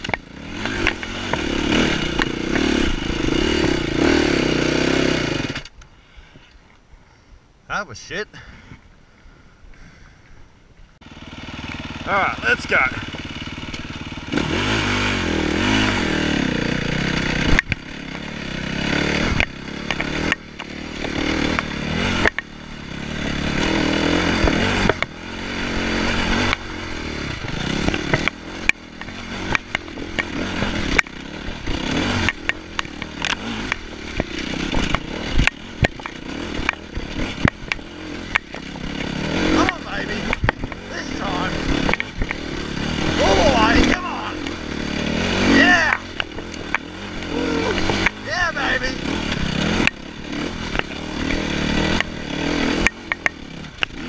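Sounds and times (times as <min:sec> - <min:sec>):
bike knocking and clattering over bumps: 0:00.0 - 0:04.2, 0:17.0 - 0:23.6, 0:24.2 - 0:25.2, 0:27.5 - 0:43.0, 0:49.3 - 0:54.0
dirt bike engine revving: 0:00.0 - 0:05.7, 0:11.0 - 0:54.0.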